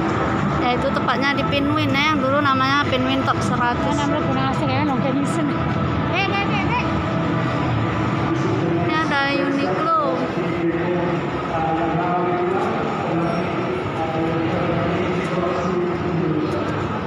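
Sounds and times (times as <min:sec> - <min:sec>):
steady musical background: 0:00.0 - 0:17.0.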